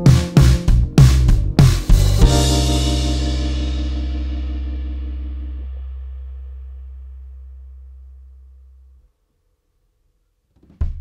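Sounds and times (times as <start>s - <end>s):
higher sustained notes: 0.0s - 9.0s
low electric bass note: 0.0s - 9.0s.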